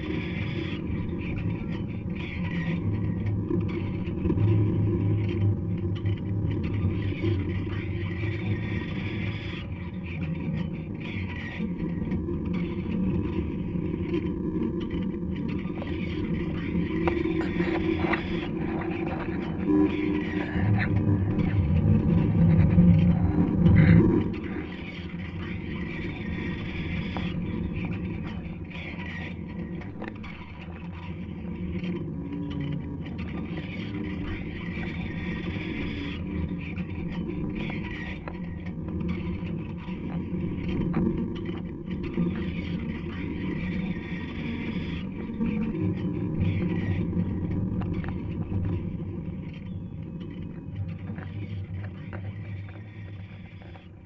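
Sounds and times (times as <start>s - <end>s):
experimental electronic drone: 0.0s - 54.0s.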